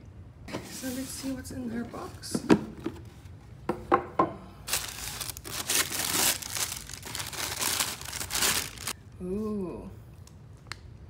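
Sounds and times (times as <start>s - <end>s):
tissue paper crinkling: 4.7s - 9.0s.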